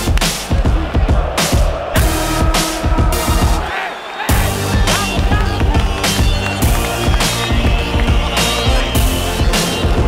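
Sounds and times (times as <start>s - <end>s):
electronic music with heavy bass: 0.0s - 3.7s, 4.3s - 10.0s.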